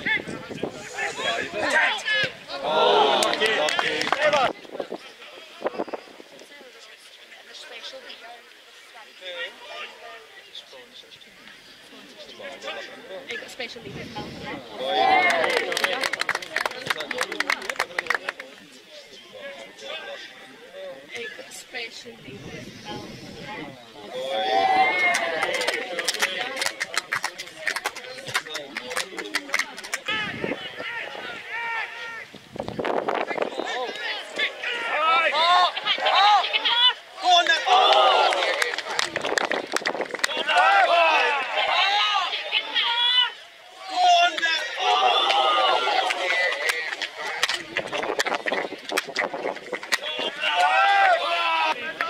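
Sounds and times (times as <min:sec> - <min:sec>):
voices calling and shouting: 0:00.0 - 0:52.0.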